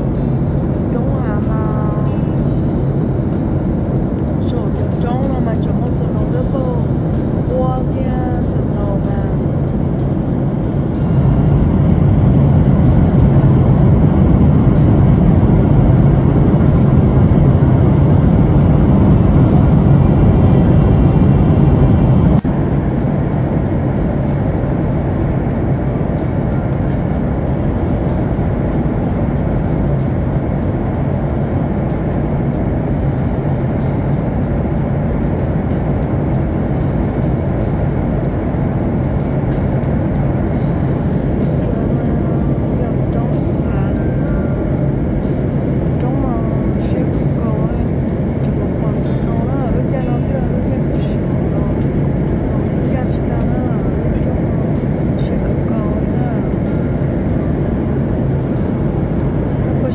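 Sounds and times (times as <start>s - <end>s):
airliner engine hum and rushing air: 0.0s - 59.9s.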